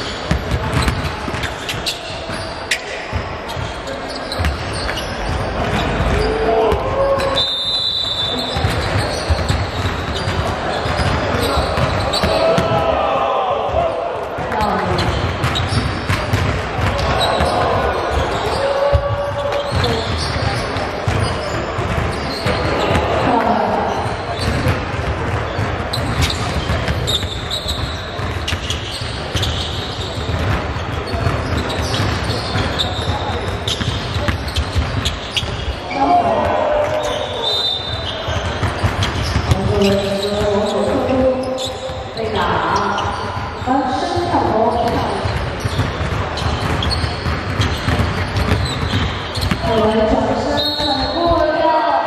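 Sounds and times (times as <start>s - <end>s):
basketball bouncing on wooden court: 0.0s - 13.0s, 13.7s - 51.7s
people's voices: 0.0s - 47.8s, 49.6s - 52.0s.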